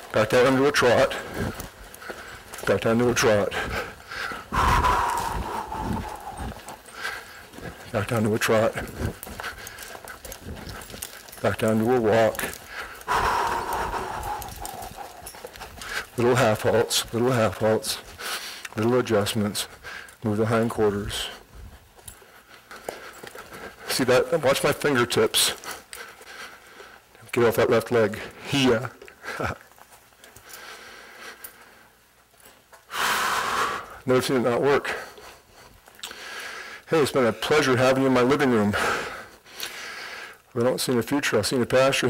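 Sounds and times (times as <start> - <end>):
horse hoofbeats: 0.0 - 39.6.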